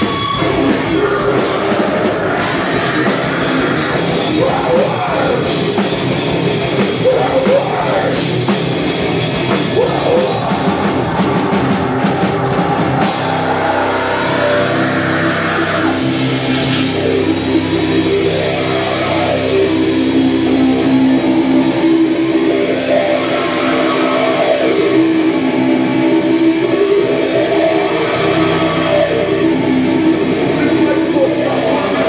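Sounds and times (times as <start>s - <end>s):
electric guitar: 0.0s - 32.0s
heavy metal band playing live: 0.0s - 32.0s.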